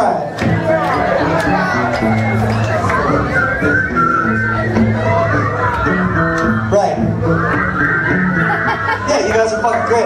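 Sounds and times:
crowd noise: 0:00.0 - 0:10.0
live music low instrument notes: 0:00.0 - 0:10.0
high steady whistle: 0:02.2 - 0:08.4.

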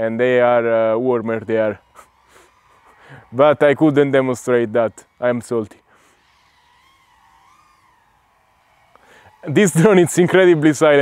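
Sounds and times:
drone motors whining: 0:00.0 - 0:11.0.

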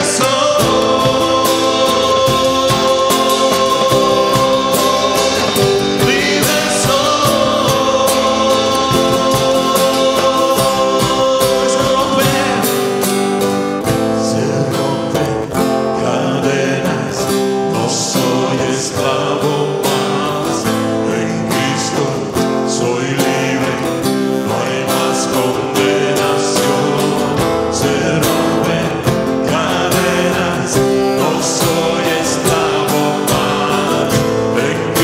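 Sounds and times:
band accompaniment: 0:00.0 - 0:15.9, 0:24.9 - 0:35.0
strummed acoustic guitar: 0:00.0 - 0:35.0.

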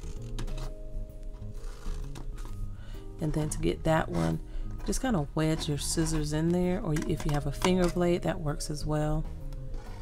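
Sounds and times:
background music with held notes: 0:00.0 - 0:10.0
scissors cutting cardstock: 0:05.5 - 0:08.0.

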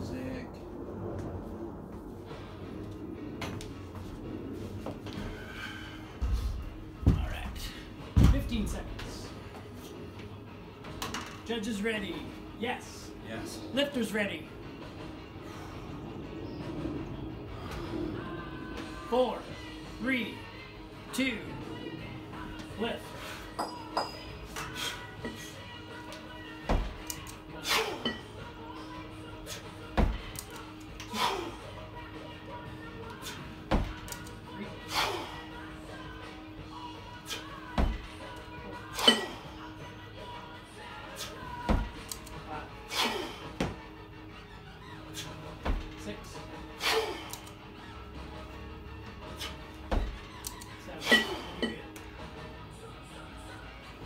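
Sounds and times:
background music: 0:00.0 - 0:54.0
kettlebells thudding and clinking: 0:08.1 - 0:09.1, 0:23.5 - 0:25.4, 0:26.6 - 0:27.0, 0:27.8 - 0:28.4, 0:29.9 - 0:30.4, 0:37.7 - 0:38.2, 0:38.8 - 0:39.5, 0:41.6 - 0:42.0, 0:45.5 - 0:46.2, 0:49.8 - 0:50.3, 0:51.0 - 0:52.0.

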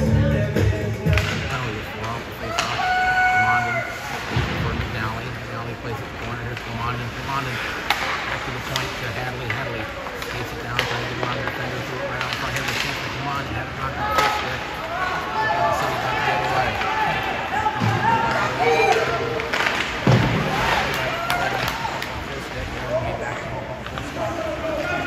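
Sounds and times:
low arena hum: 0:00.0 - 0:25.0
hockey stick and puck clacks: 0:01.0 - 0:05.0, 0:05.7 - 0:25.0.

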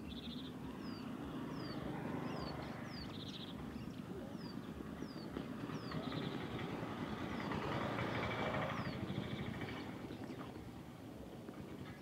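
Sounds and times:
birds chirping and trilling: 0:00.0 - 0:10.6
road noise rumble: 0:00.0 - 0:12.0
vehicle passing: 0:00.8 - 0:10.8.

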